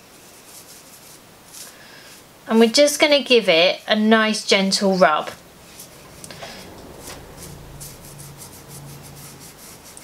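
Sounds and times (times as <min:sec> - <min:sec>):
fingertip rubbing metal leaf: 0:05.6 - 0:10.0.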